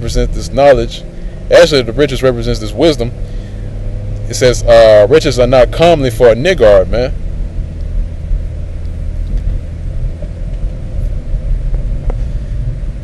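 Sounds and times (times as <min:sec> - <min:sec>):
constant hum: 0:00.0 - 0:13.0
low rumble: 0:00.0 - 0:13.0.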